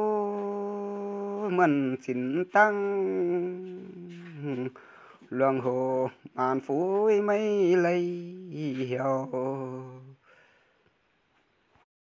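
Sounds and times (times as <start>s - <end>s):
person singing long note: 0.0s - 4.7s, 5.3s - 10.2s.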